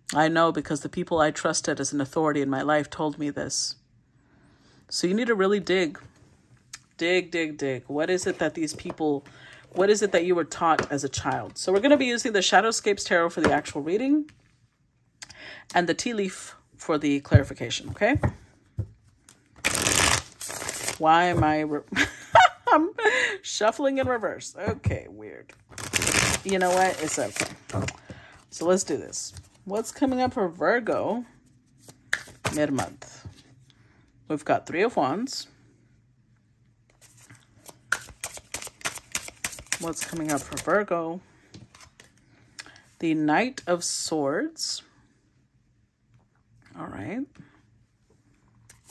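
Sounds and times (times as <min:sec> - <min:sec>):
cards rustling: 0:19.2 - 0:21.4, 0:25.7 - 0:30.2, 0:37.0 - 0:40.7
cards riffle-shuffled: 0:19.6 - 0:21.0, 0:25.7 - 0:28.1, 0:31.8 - 0:32.9, 0:37.0 - 0:40.7
cards clicking: 0:37.9 - 0:40.7.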